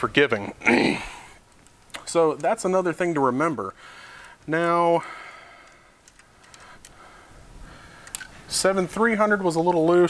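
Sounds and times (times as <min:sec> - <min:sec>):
small metal parts clicking: 0:05.6 - 0:06.9, 0:08.0 - 0:08.3.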